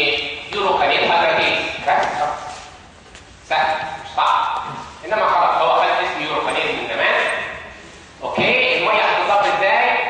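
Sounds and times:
man lecturing: 0.0 - 2.7, 3.4 - 10.0.

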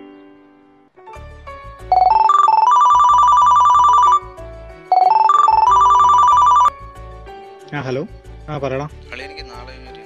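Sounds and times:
phone ringtone tune: 1.9 - 6.8.

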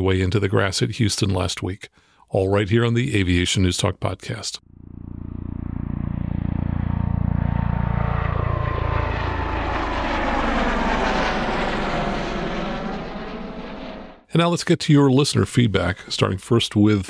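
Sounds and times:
propeller airplane flying past: 4.6 - 14.3.

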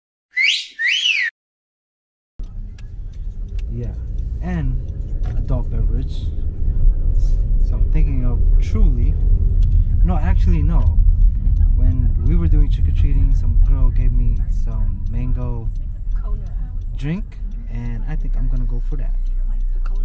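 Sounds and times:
whistle glides: 0.3 - 1.4
car cabin road rumble: 2.4 - 20.0.

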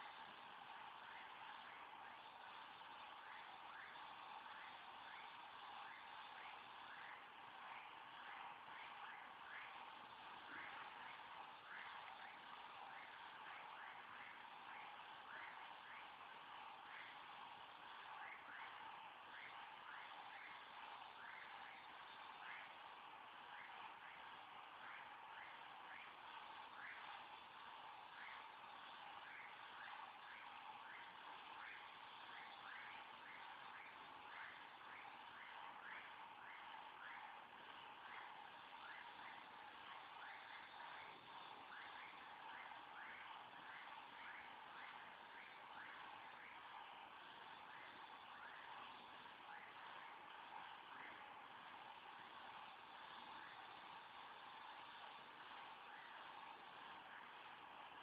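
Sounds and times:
faint steady hiss: 0.0 - 58.0.

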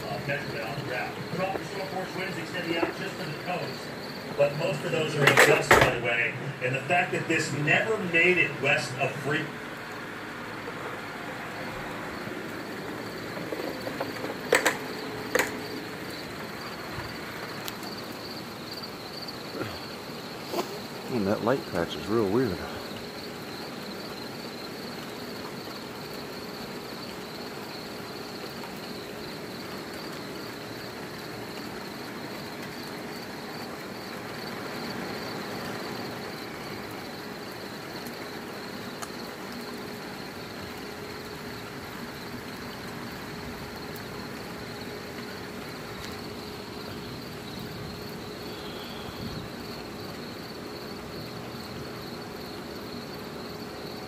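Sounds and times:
faint hiss: 0.0 - 53.8
crickets chirping: 0.0 - 54.0.

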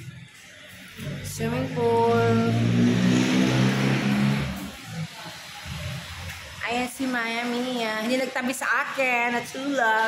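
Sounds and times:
vehicle engine hum: 0.0 - 6.8.

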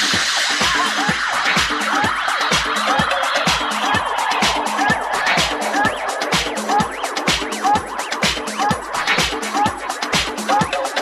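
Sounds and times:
house dance music: 0.0 - 11.0
warbling chirping sounds: 0.4 - 9.0.

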